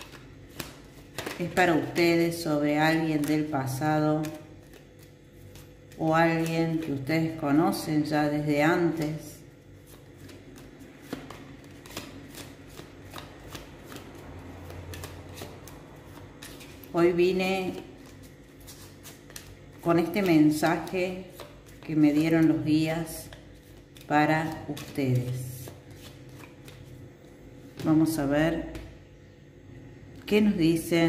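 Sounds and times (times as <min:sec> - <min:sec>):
cards being shuffled: 0:00.0 - 0:07.5, 0:08.7 - 0:17.0, 0:17.7 - 0:27.1.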